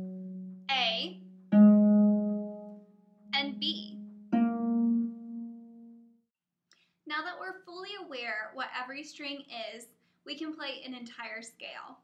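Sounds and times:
harp string plucked: 0:03.4 - 0:06.1.

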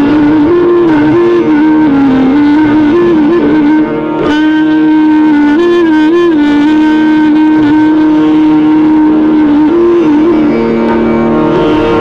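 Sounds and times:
clarinet holding long note: 0:00.0 - 0:12.0.

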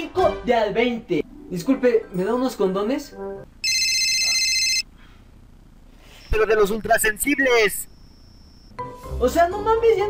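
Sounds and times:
mobile phone ringtone: 0:03.6 - 0:04.9.

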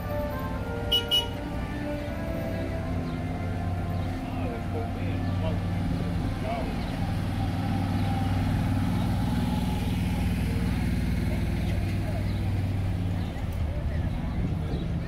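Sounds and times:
atv engine running: 0:00.0 - 0:15.0.

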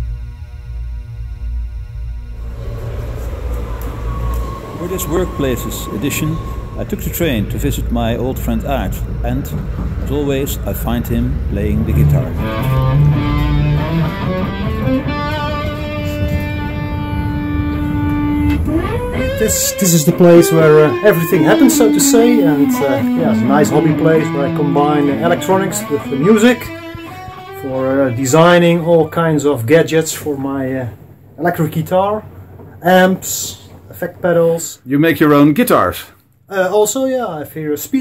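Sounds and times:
droning intro music: 0:00.0 - 0:31.4
train at station: 0:00.0 - 0:34.9
deep rumble: 0:00.0 - 0:35.3
electric guitar notes: 0:11.4 - 0:29.1.

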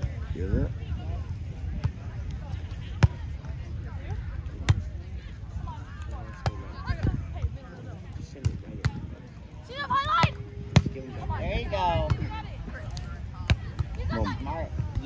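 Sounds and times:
wind rumble on microphone: 0:00.0 - 0:15.0.

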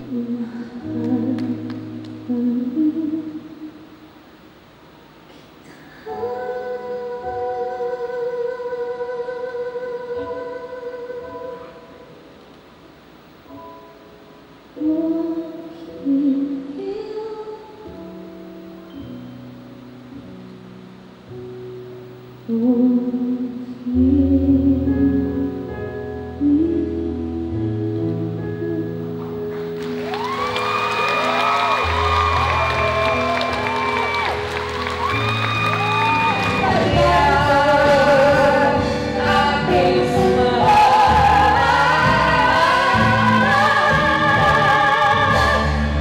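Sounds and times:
woman singing slow ballad: 0:00.0 - 0:03.9, 0:05.6 - 0:12.1, 0:14.8 - 0:18.3, 0:22.4 - 0:29.4, 0:36.0 - 0:46.0.

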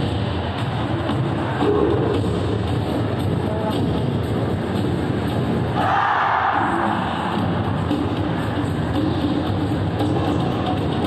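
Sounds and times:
large crowd noise: 0:00.0 - 0:11.0
music with steady beat: 0:00.0 - 0:11.0
crowd shouting: 0:05.8 - 0:07.5.

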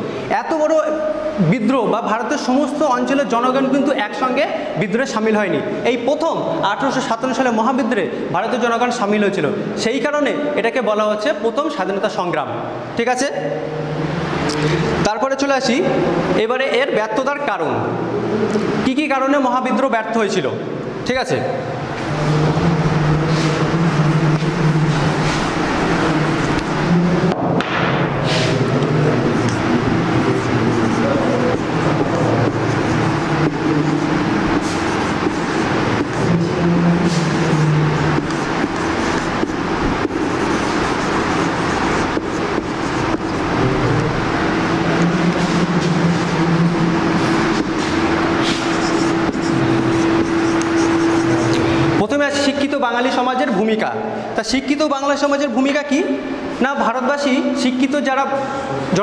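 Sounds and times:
engine drone: 0:13.6 - 0:15.1, 0:21.6 - 0:52.7
marker scratching on whiteboard: 0:22.0 - 0:27.3, 0:28.2 - 0:52.9.

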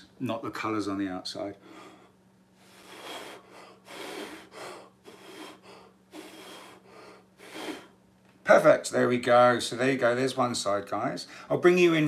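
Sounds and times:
person blowing short breaths: 0:01.6 - 0:08.0.

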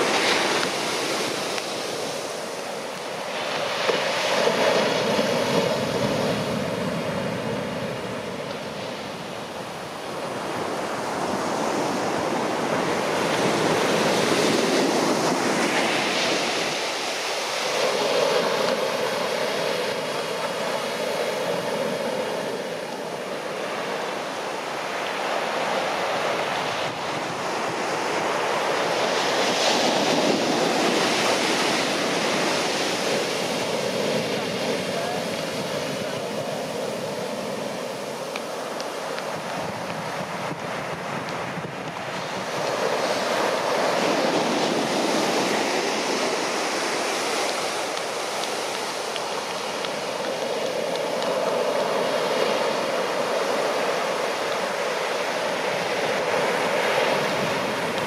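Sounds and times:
waves crashing on beach: 0:00.0 - 0:58.0.

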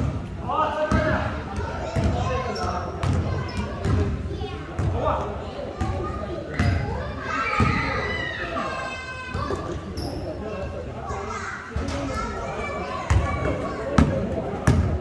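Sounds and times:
basketball bouncing on gym floor: 0:01.9 - 0:02.2, 0:03.0 - 0:04.1, 0:14.0 - 0:15.0.

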